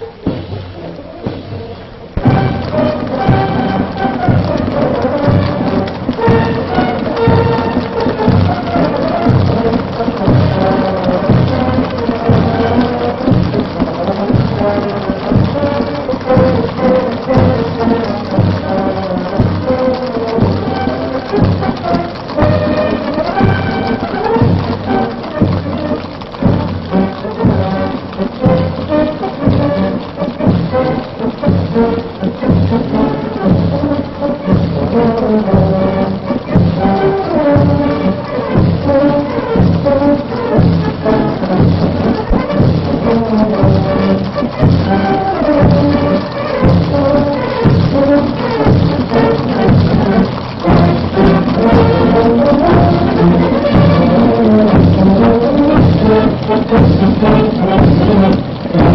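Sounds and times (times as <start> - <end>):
brass band playing march: 0.0 - 58.9.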